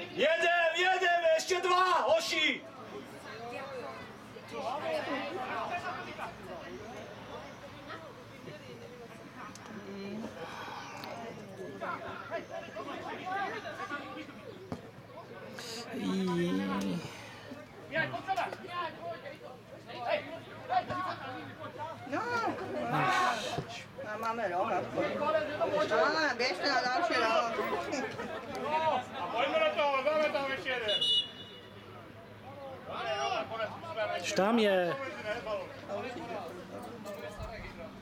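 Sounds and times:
voices talking and calling out: 0.0s - 38.0s.

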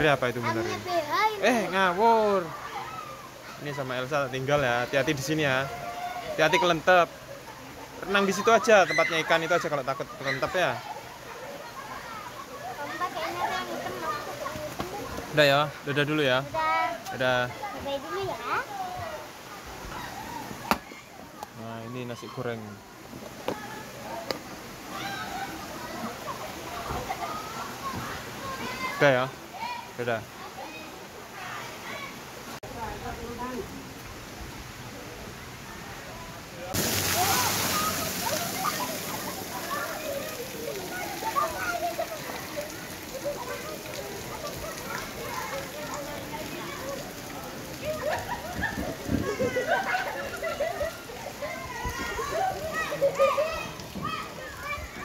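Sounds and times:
chatter of children and adults: 0.0s - 55.0s.

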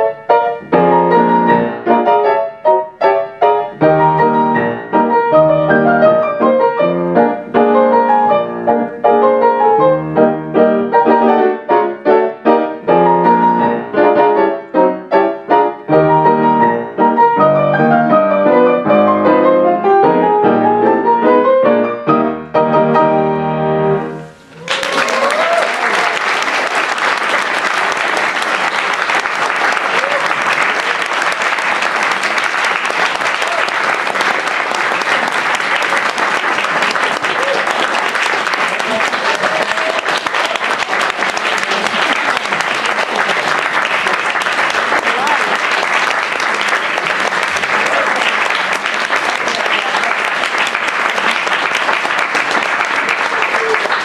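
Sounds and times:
piano duet: 0.0s - 26.2s
audience applauding: 24.3s - 54.0s.

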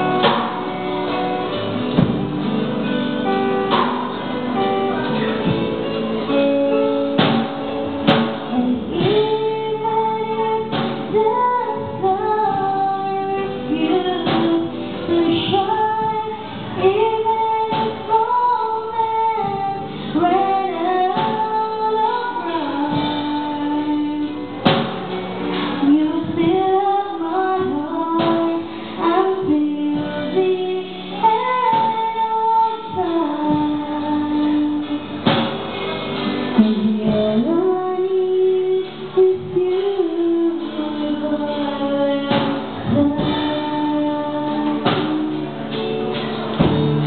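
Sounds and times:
woman singing a ballad: 0.0s - 5.6s, 6.2s - 35.5s, 36.2s - 46.4s.

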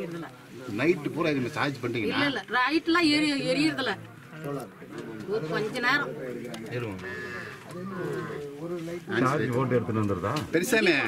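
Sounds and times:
people talking nearby: 0.0s - 11.0s
surrounding conversation: 0.0s - 11.0s.

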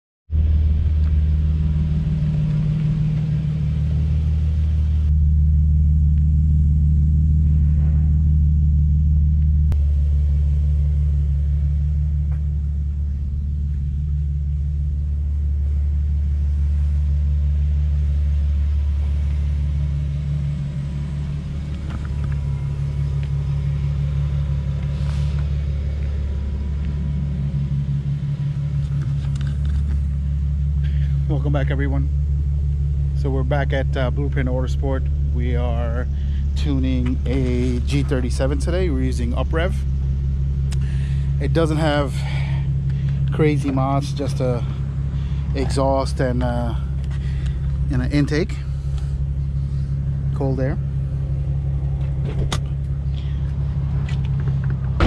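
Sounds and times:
car engine idling: 0.3s - 55.0s.

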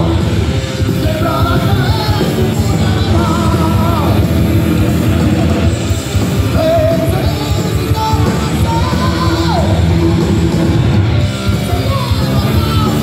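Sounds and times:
person singing: 0.0s - 5.2s, 6.4s - 10.5s, 11.5s - 13.0s
bass and drums: 0.0s - 13.0s
distorted electric guitars: 0.0s - 13.0s.

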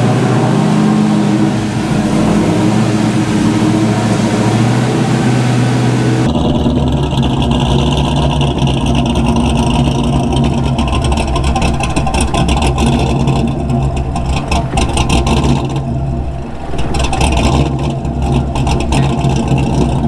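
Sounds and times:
car engine running at low revs: 0.0s - 20.0s.

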